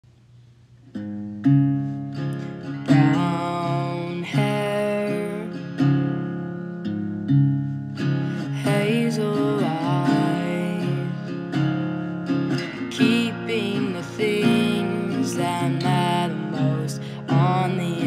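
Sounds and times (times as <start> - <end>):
acoustic guitar strumming: 0.8 - 18.0.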